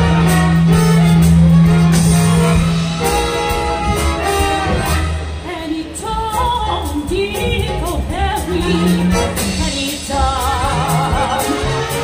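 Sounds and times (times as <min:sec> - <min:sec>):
symphony orchestra playing: 0:00.0 - 0:12.0
person singing with vibrato: 0:04.3 - 0:12.0.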